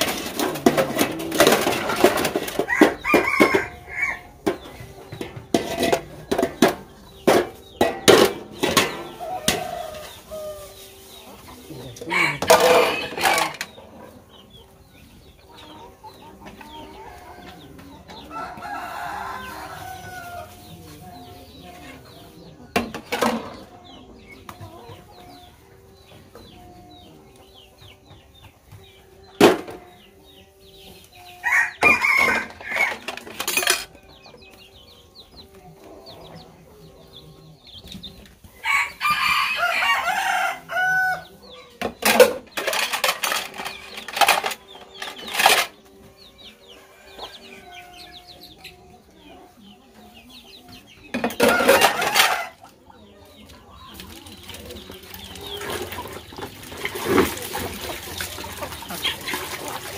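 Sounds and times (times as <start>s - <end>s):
plates and metal trays clattering: 0.0s - 10.3s, 11.9s - 14.6s, 15.6s - 30.5s, 31.5s - 34.8s, 41.8s - 48.8s, 50.7s - 52.8s
chickens clucking: 0.0s - 59.9s
rooster crowing: 2.7s - 4.3s, 12.1s - 13.6s, 31.4s - 33.1s, 38.6s - 41.3s.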